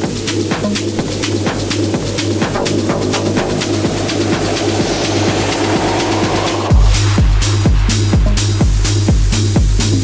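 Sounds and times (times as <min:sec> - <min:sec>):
rising noise sweep: 0:00.2 - 0:08.1
held bass note: 0:00.8 - 0:07.6
kick drum: 0:06.7 - 0:10.0.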